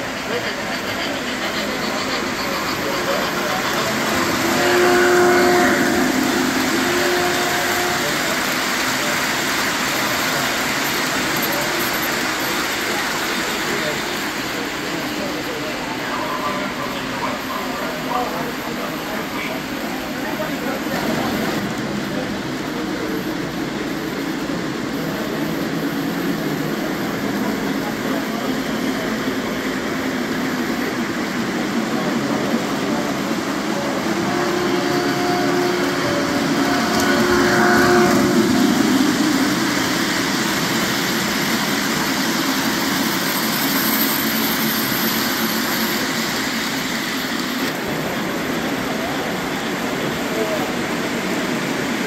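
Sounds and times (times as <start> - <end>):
model train wheels rumbling: 0.0 - 16.0, 17.0 - 52.0
chatter of people: 0.0 - 52.0.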